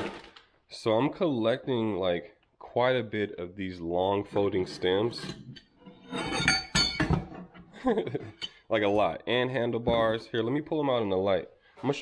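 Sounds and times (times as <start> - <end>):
metal parts clanking together: 5.2 - 7.5.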